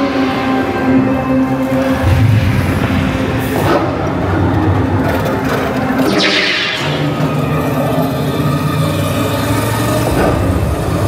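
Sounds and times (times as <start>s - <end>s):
attraction music score: 6.0s - 8.8s.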